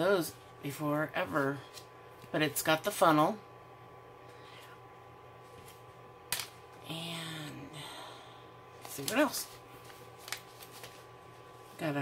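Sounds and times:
person speaking: 0.0s - 3.5s, 6.8s - 8.2s, 8.8s - 9.7s, 11.6s - 12.0s
faint steady hum: 0.0s - 12.0s
plastic rustling: 8.8s - 11.9s.

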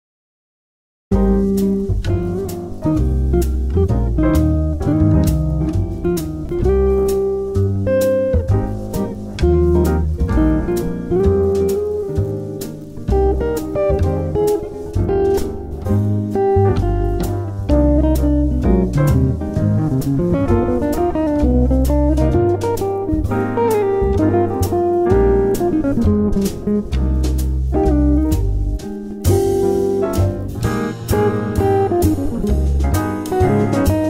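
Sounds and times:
electric jazz guitar: 1.1s - 34.0s
low bass notes: 1.1s - 34.0s
steady beat: 1.1s - 34.0s.

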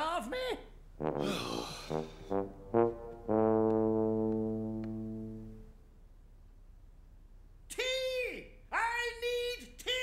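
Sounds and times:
brass music cue: 1.0s - 5.8s.

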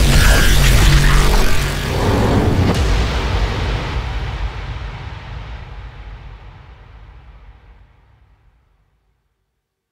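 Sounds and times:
deep soundtrack boom: 0.0s - 8.6s.

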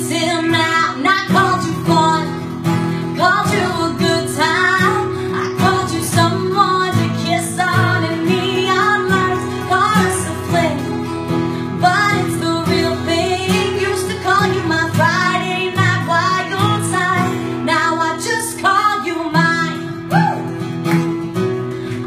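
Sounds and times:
guitar accompaniment: 0.0s - 22.0s
woman singing country song: 0.0s - 22.0s.

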